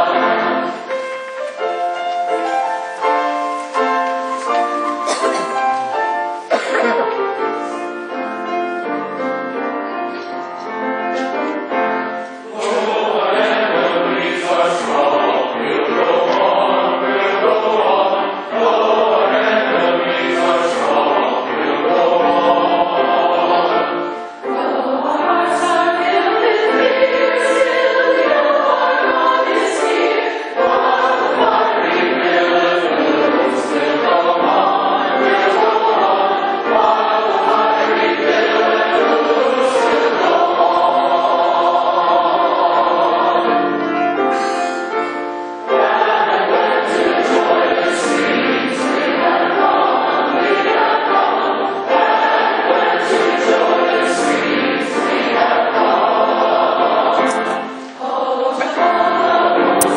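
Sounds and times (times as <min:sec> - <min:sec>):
choir singing a hymn: 0:00.0 - 0:59.9
grand piano: 0:00.0 - 0:59.9.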